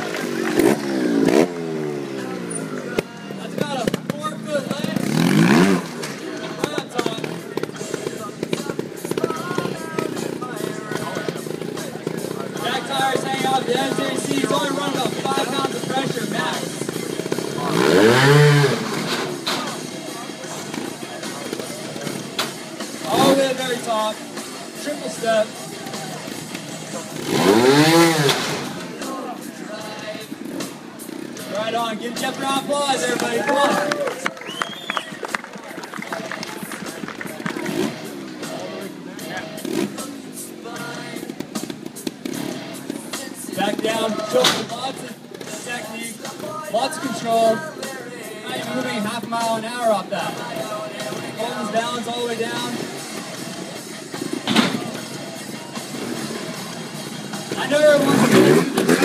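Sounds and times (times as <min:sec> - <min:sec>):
motorcycle engine revving: 0:00.0 - 0:33.1, 0:36.8 - 0:59.0
background music: 0:00.0 - 0:59.0.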